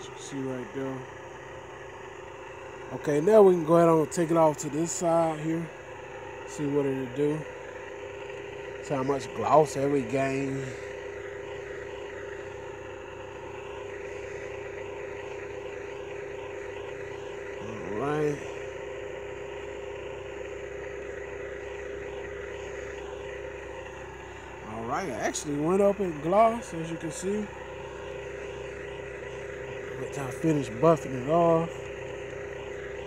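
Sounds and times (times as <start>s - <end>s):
steady engine hum: 0.0s - 33.0s.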